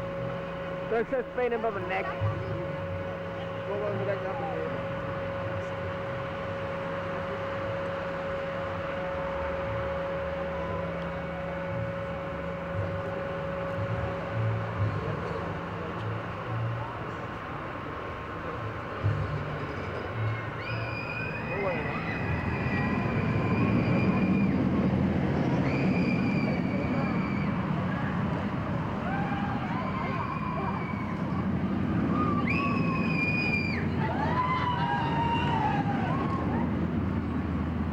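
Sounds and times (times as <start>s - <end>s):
roller coaster lift mechanical hum: 0.0s - 37.9s
wheels on steel track: 0.0s - 37.9s
riders screaming: 29.0s - 31.3s, 32.1s - 36.8s.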